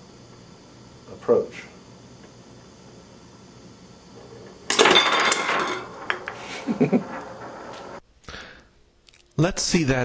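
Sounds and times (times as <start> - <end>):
steel balls clattering and rolling: 4.2 - 8.0.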